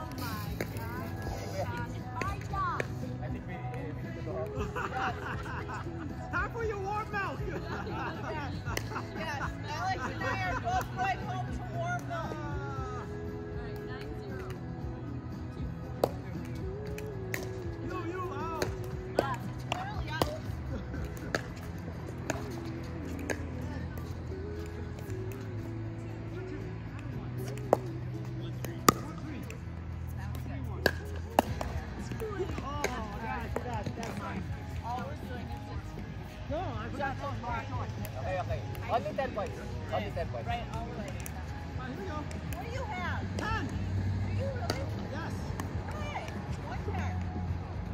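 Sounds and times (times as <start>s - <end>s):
background music with bass: 0.0s - 47.9s.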